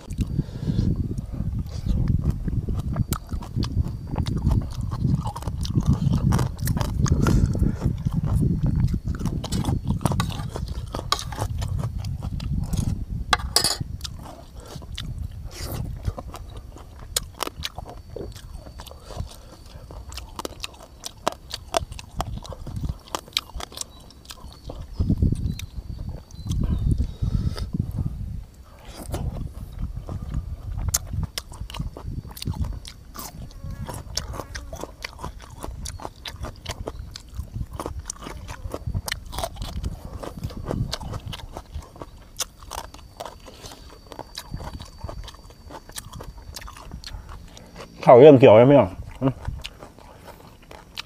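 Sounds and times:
man chewing and lip-smacking: 0.0 - 48.1, 48.9 - 51.0.

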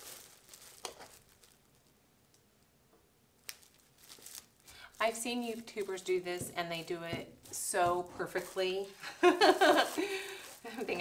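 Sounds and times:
plastic film crinkling: 0.0 - 2.4, 3.4 - 11.0.

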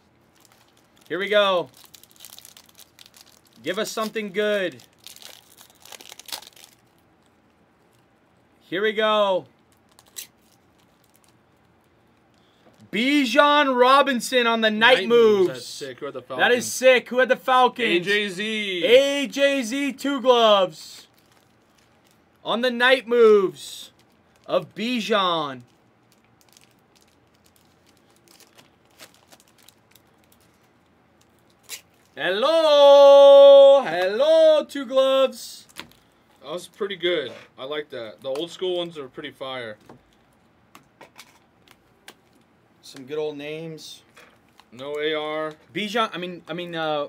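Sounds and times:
foil wrapper crinkling: 0.2 - 8.1, 9.6 - 12.6, 21.0 - 22.4, 25.6 - 32.2.

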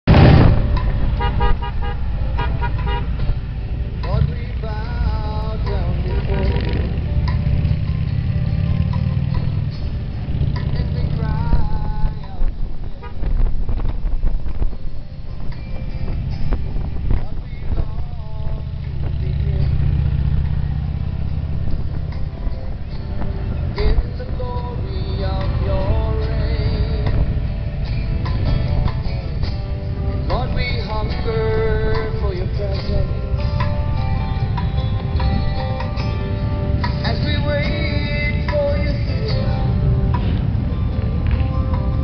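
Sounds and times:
wind noise: 0.0 - 8.1, 8.7 - 42.0
motorcycle engine: 0.0 - 13.9, 15.2 - 42.0
short horn toots: 1.2 - 3.2.

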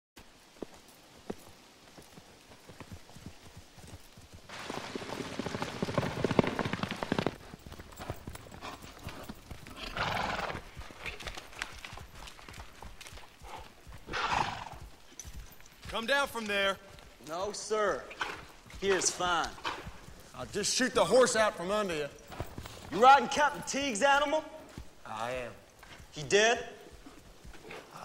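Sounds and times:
horse hooves clopping: 0.2 - 28.0
horse whinnying: 9.7 - 10.6, 14.1 - 14.8
short horse calls: 13.5 - 14.8.

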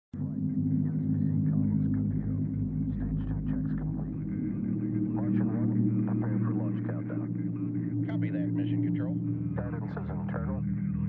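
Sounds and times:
faint muffled voices: 0.2 - 10.8
steady low hum: 0.2 - 11.0.

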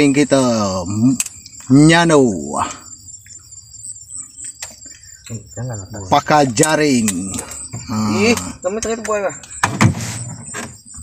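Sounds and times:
insects chirring: 0.0 - 11.0.

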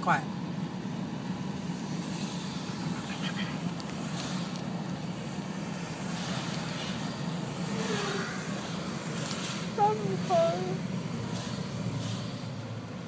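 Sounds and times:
car cabin drone: 0.0 - 13.0.

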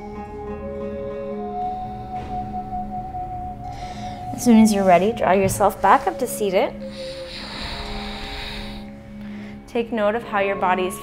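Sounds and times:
gentle background music: 0.0 - 11.0.

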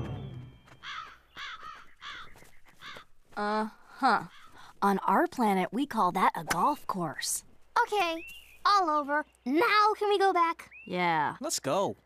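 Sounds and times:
crow cawing: 0.8 - 3.2, 3.9 - 4.7.

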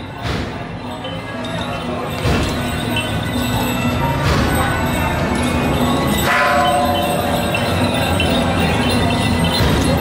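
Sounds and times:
metallic bell ringing: 0.8 - 10.0.

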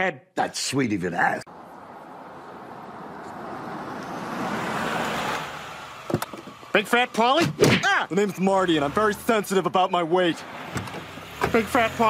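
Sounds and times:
car engine and road noise: 1.4 - 12.0.

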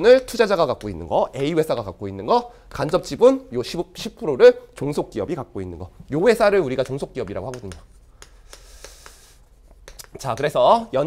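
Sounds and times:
chalk tapping on chalkboard: 6.7 - 10.8
chalk scratching across board: 7.5 - 10.5.

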